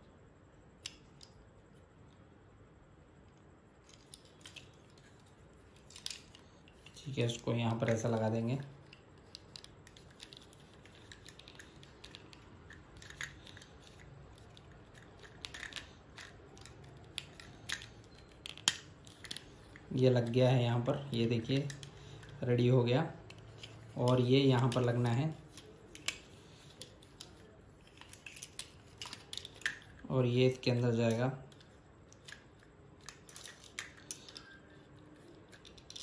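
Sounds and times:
plastic toy parts clicking: 3.9s - 20.4s, 21.2s - 22.4s, 23.2s - 36.0s.

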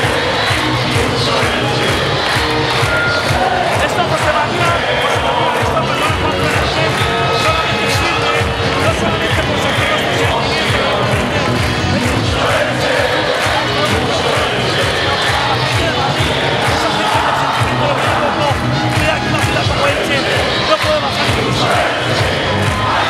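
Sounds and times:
crowd singing along to music: 0.0s - 23.0s.

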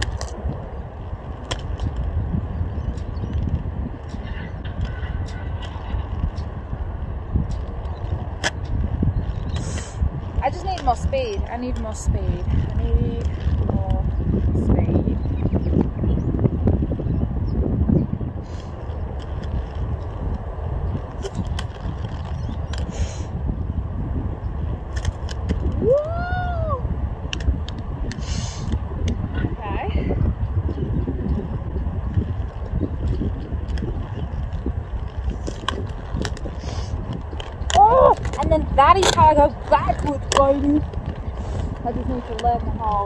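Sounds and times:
roller skate wheels rumbling: 0.0s - 43.0s.

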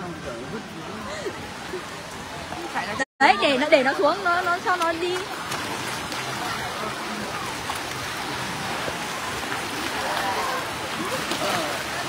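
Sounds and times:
faint voices: 0.0s - 12.0s
water washing in wave pool: 0.0s - 12.0s.

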